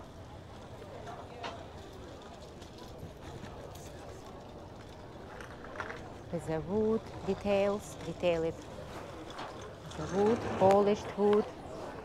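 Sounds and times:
people talking: 0:06.2 - 0:08.6, 0:09.8 - 0:12.0.

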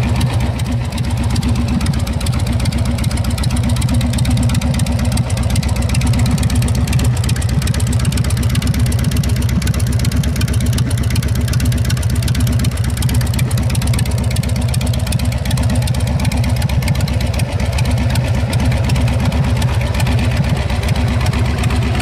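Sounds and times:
small engine idling with rapid pulse: 0:00.0 - 0:22.0.

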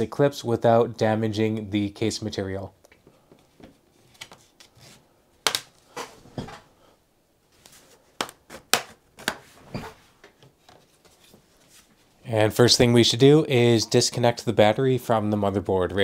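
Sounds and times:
faint scraping and handling: 0:03.1 - 0:05.1, 0:09.4 - 0:12.3.

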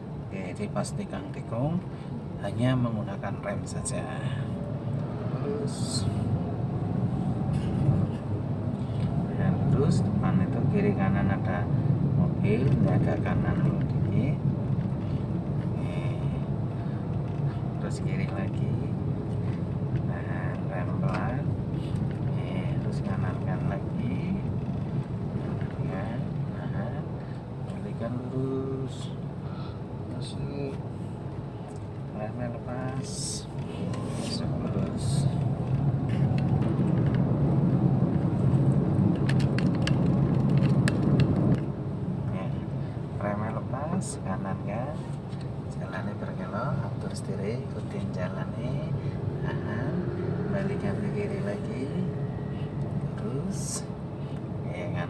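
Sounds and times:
car engine and road noise: 0:00.0 - 0:55.0.

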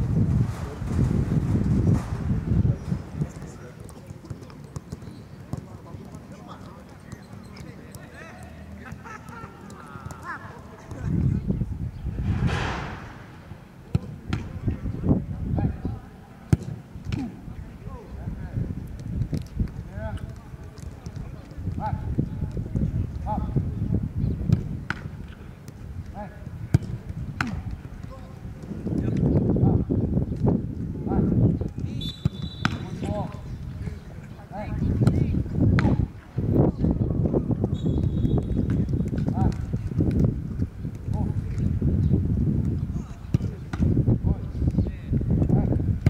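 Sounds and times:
voices calling out: 0:02.8 - 0:11.3
footballs being kicked: 0:03.0 - 0:11.3, 0:12.2 - 0:14.9, 0:37.5 - 0:41.8, 0:42.6 - 0:45.7
men calling: 0:07.7 - 0:11.0
football kick thuds: 0:12.2 - 0:14.8, 0:32.2 - 0:33.3, 0:34.9 - 0:36.1, 0:42.6 - 0:44.0.

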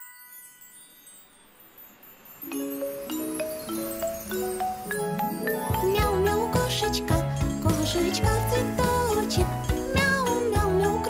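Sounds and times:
bell-like chime tones: 0:00.0 - 0:08.3
high sparkling shimmer: 0:00.0 - 0:11.0.

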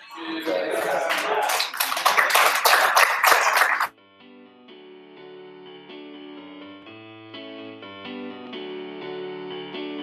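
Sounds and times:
audience applauding: 0:00.4 - 0:03.9.

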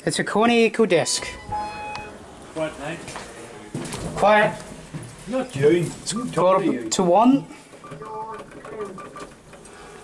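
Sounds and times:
short tone: 0:01.0 - 0:02.2
lift mechanical hum: 0:01.1 - 0:02.9.

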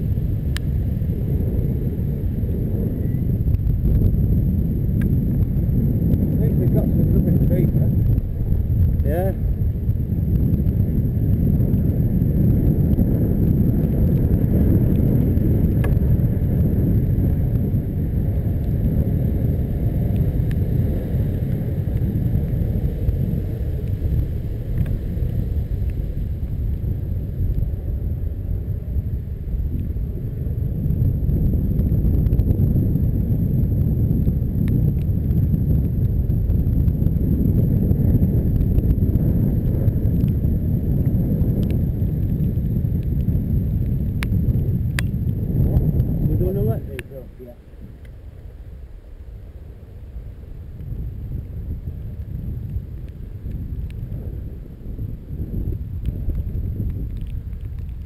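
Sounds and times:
wind buffeting microphone: 0:00.0 - 0:58.0
faint ticks from bike: 0:00.5 - 0:00.8, 0:03.0 - 0:04.2, 0:04.9 - 0:06.3, 0:10.2 - 0:16.2, 0:16.9 - 0:19.0, 0:20.0 - 0:27.7, 0:30.9 - 0:46.1, 0:48.0 - 0:48.5, 0:50.7 - 0:54.5, 0:55.7 - 0:58.0.

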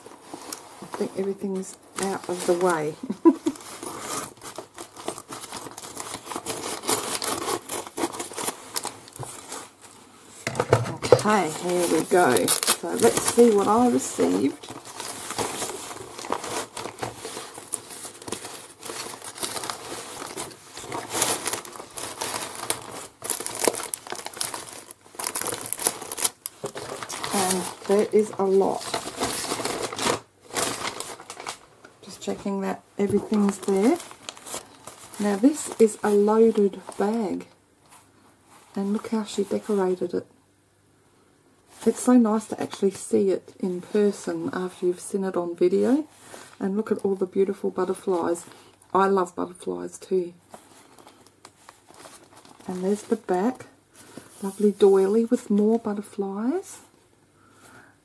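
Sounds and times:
plastic mailer bag crinkling: 0:00.2 - 0:10.0, 0:11.0 - 0:37.5, 0:50.5 - 0:55.9.

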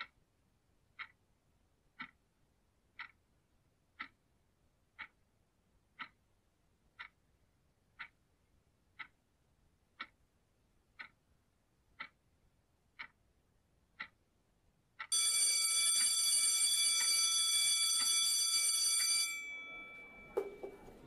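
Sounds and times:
clock ticking: 0:00.0 - 0:21.0
school bell ringing: 0:15.1 - 0:21.0.

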